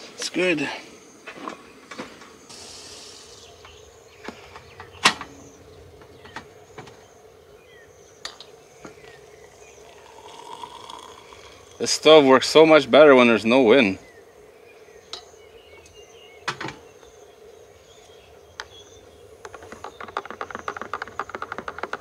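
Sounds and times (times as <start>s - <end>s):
camp stove hissing: 2.4s - 12.8s
hot water pouring into mug: 9.3s - 12.1s.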